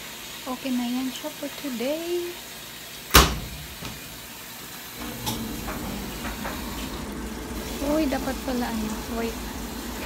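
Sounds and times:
washing machine water inflow: 0.0s - 10.0s.

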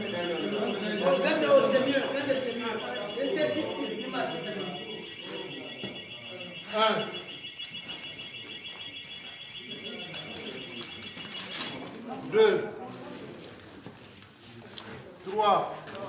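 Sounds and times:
murmured voices: 0.0s - 16.0s.

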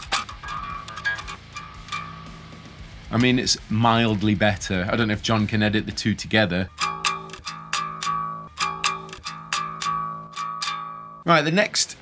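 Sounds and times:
electric guitar string plucked: 0.0s - 4.4s, 6.4s - 11.3s.

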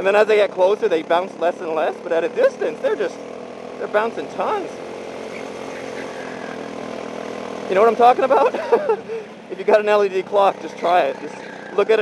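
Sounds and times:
go-kart engine running: 0.0s - 12.0s.

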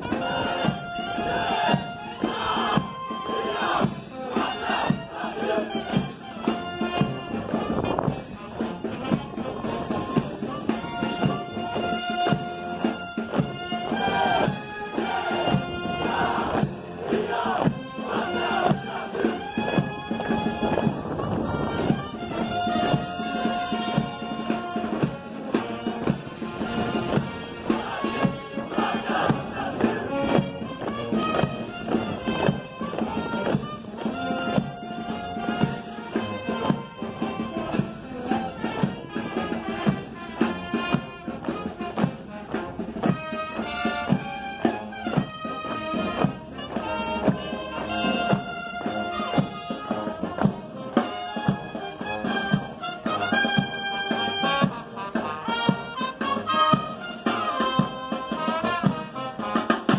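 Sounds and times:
military band playing march: 0.0s - 59.9s.

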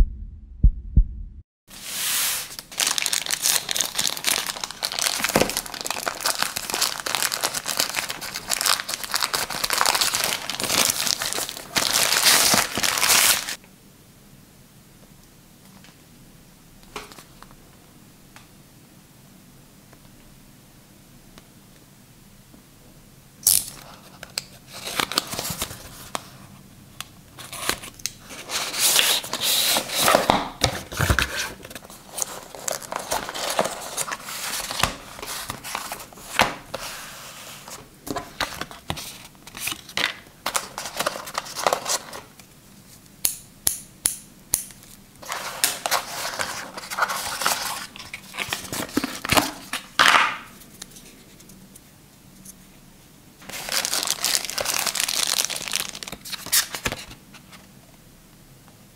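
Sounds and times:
cardboard box rustling and crinkling: 2.4s - 13.6s, 27.4s - 42.2s, 45.2s - 49.9s, 53.5s - 56.6s.

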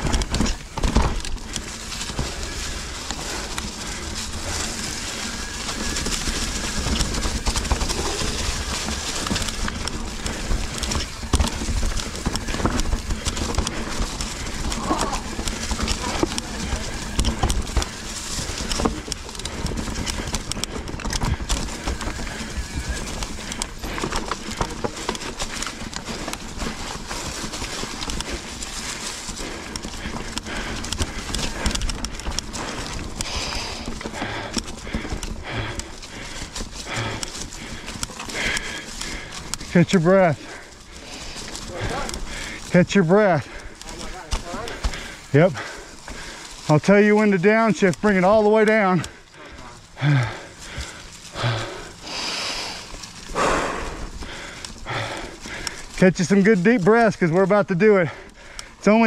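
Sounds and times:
bike clattering over rocks: 0.0s - 59.0s.

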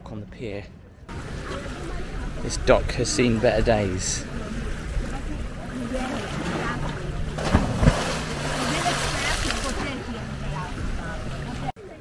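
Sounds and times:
people's voices: 0.0s - 12.0s
motorboat engine humming: 0.7s - 12.0s
water splashing: 1.1s - 11.8s.

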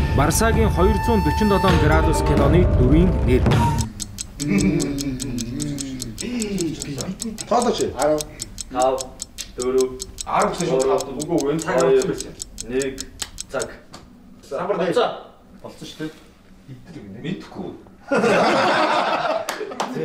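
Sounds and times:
men talking: 0.2s - 13.8s
clock ticking fast: 3.5s - 13.8s.

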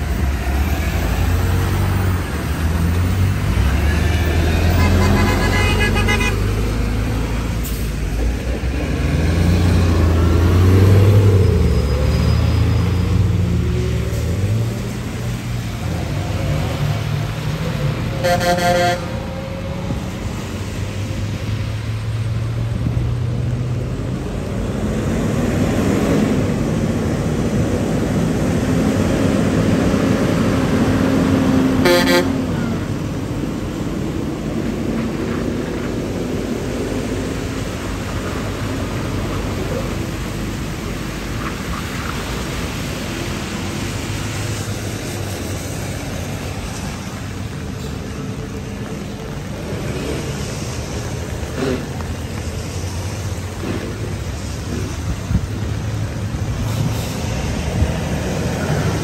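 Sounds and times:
traffic on wet road: 0.0s - 59.0s
truck passing close: 0.0s - 59.0s
car horn toot: 4.7s - 6.4s, 31.8s - 32.4s.

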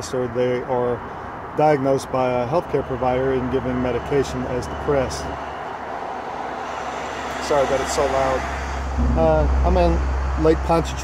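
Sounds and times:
road traffic passing: 0.0s - 11.0s
wind: 0.0s - 11.0s.

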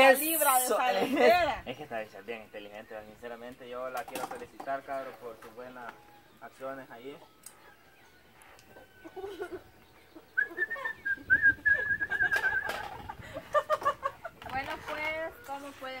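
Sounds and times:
high whistled call: 10.2s - 12.8s.

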